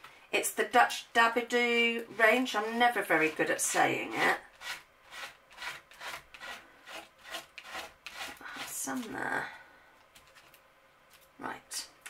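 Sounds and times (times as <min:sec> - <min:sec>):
palette knife scraping paste: 0:02.1 - 0:09.1.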